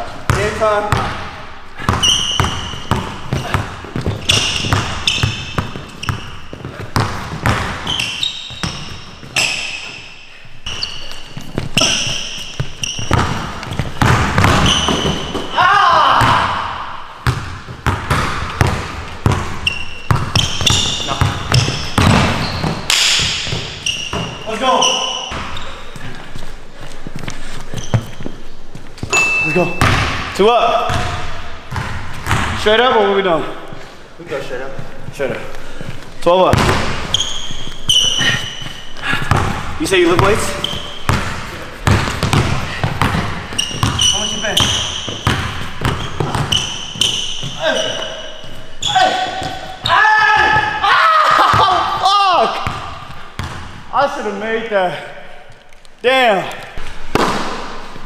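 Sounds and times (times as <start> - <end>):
sneakers squeaking: 0.0 - 58.0
basketball bouncing on hardwood floor: 1.8 - 9.6, 10.7 - 15.6, 17.2 - 24.4, 29.8 - 32.6, 36.5 - 37.5, 39.2 - 47.8, 52.5 - 53.8.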